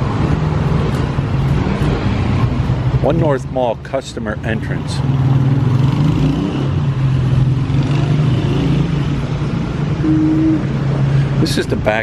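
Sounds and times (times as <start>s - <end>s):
brief high tone: 10.0s - 10.7s.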